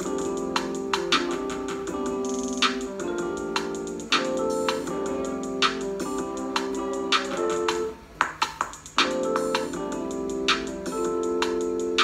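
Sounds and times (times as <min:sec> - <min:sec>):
keyboard chords: 0:00.0 - 0:12.0
programmed drums: 0:00.0 - 0:12.0.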